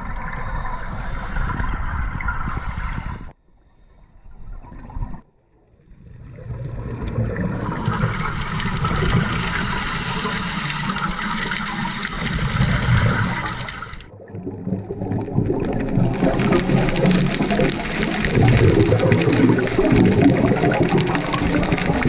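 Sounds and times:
underwater air bubbles rushing: 0:05.8 - 0:22.0.

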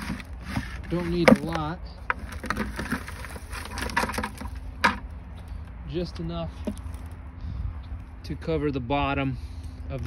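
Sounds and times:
manure rustling into plastic pot: 0:00.0 - 0:05.1.

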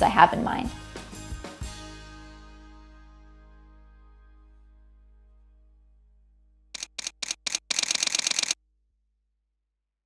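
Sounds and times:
camera shutter clicks: 0:06.8 - 0:08.6.

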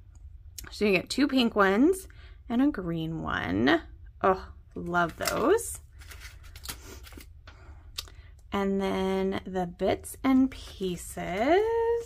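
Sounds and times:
paper rustling: 0:04.8 - 0:07.3, 0:10.3 - 0:12.0.

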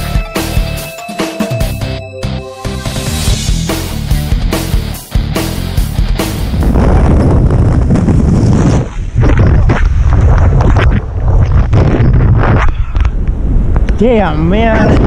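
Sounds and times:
backing music: 0:00.0 - 0:06.8
wind buffeting microphone: 0:06.4 - 0:15.0.

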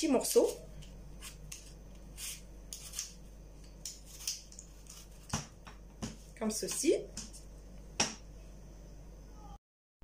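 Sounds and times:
vegetable peeler scraping apple: 0:01.2 - 0:03.2, 0:03.8 - 0:05.4.

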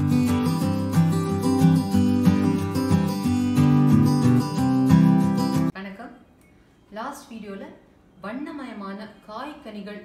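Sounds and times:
strummed acoustic guitar chords: 0:00.0 - 0:05.7.

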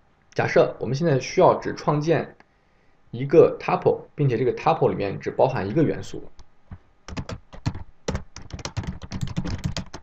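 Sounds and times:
computer keyboard typing: 0:07.1 - 0:10.0.

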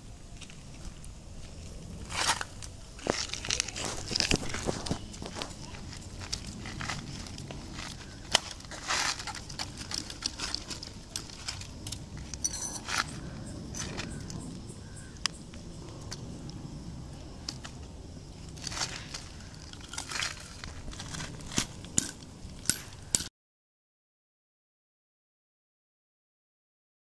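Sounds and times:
tools scraping and clicking: 0:07.8 - 0:14.5, 0:18.5 - 0:23.3.

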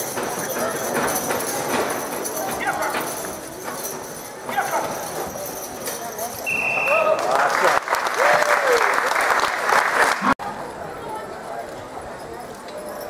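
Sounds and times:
rattling harness and chains: 0:00.0 - 0:07.1, 0:11.4 - 0:13.0.

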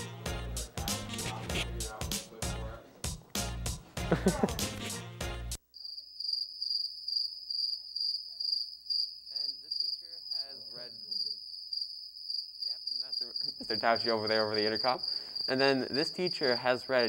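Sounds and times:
music: 0:00.0 - 0:05.6
crickets chirping: 0:05.6 - 0:17.0.

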